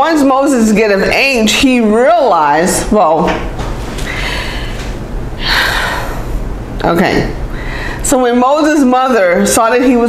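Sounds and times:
low room hum: 0:00.0 - 0:10.0
person inhaling: 0:04.0 - 0:06.5, 0:07.5 - 0:08.0.

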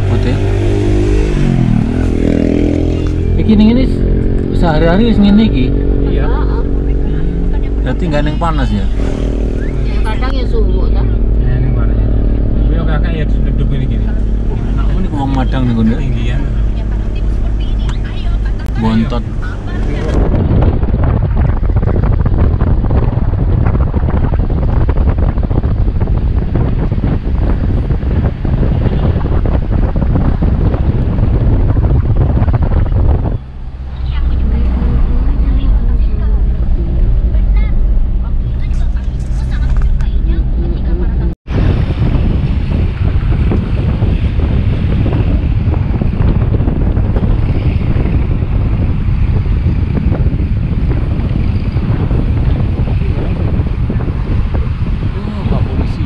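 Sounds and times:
car engine drone: 0:00.0 - 0:56.0
wind buffeting microphone: 0:00.0 - 0:56.0.

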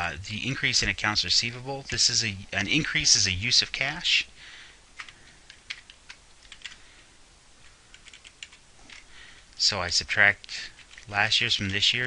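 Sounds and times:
computer keyboard typing: 0:05.0 - 0:06.8, 0:07.9 - 0:09.1, 0:10.7 - 0:11.1.

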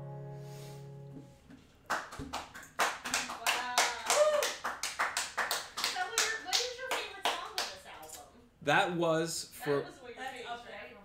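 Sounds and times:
hand clapping: 0:01.9 - 0:07.8.

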